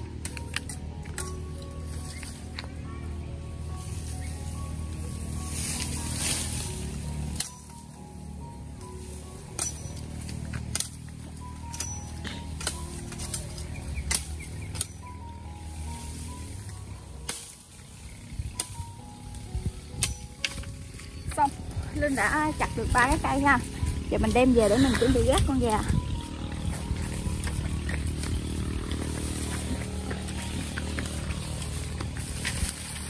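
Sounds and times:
background music: 0.0s - 33.0s
machete chopping bamboo: 9.5s - 11.0s, 11.7s - 15.0s.

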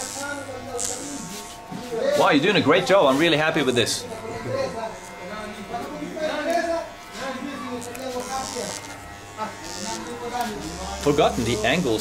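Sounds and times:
electric hair clippers buzzing: 0.0s - 12.0s.

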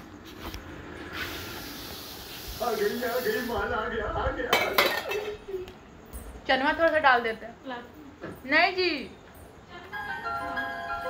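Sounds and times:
person blowing air out: 1.1s - 2.6s.

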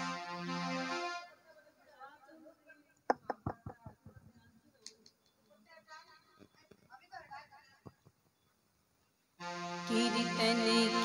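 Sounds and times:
rapid knocks: 3.1s - 4.4s.

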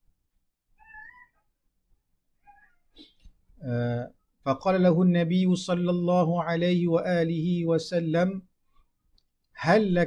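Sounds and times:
cat meowing faintly: 0.8s - 1.6s, 2.4s - 3.2s
man's voice: 3.6s - 8.5s, 9.6s - 10.0s.

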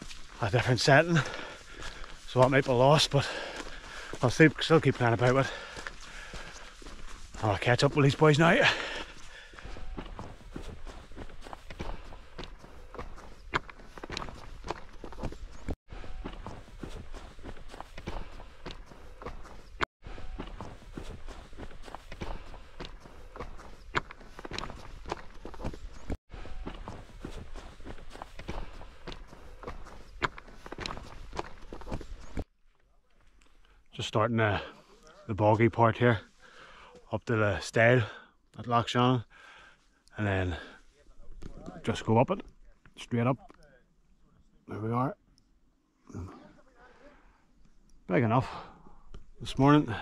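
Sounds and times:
footsteps on a trail: 0.0s - 33.8s, 34.4s - 43.2s, 47.5s - 50.0s.

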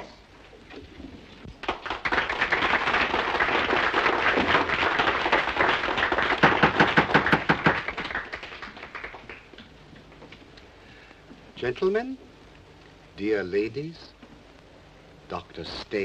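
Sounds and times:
audience applauding: 1.6s - 9.7s.

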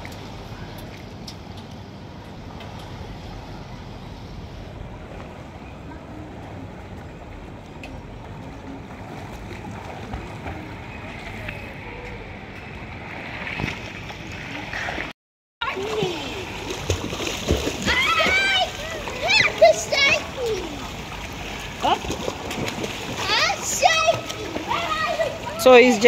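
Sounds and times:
water splashing in pool: 7.2s - 12.1s, 12.8s - 26.0s.

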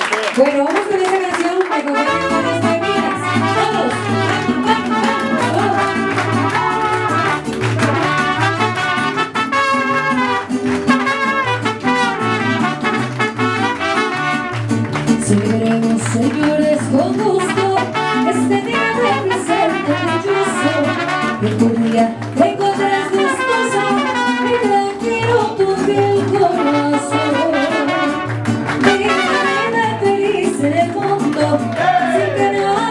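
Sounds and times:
mariachi band playing live: 0.0s - 32.9s
trumpets: 1.7s - 14.9s, 17.4s - 21.6s, 23.1s - 24.8s, 26.6s - 30.0s.

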